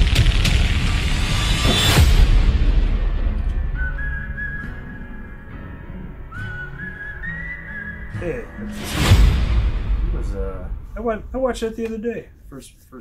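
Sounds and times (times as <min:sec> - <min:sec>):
loud hit: 0:00.0 - 0:04.4, 0:08.8 - 0:11.8
whistled melody: 0:03.1 - 0:09.3.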